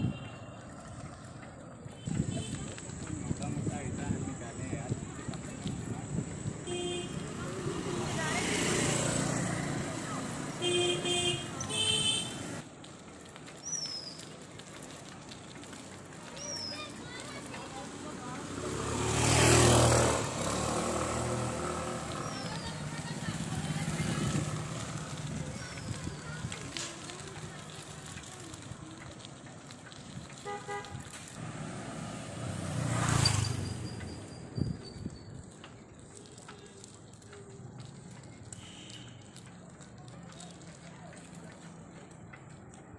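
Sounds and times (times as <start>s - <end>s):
street traffic noise: 0.0s - 42.9s
motorbike passing close: 0.5s - 12.6s, 16.8s - 29.0s, 30.4s - 35.9s
vehicle horn toots: 6.6s - 7.2s, 10.6s - 12.4s, 30.4s - 31.0s, 38.6s - 39.2s.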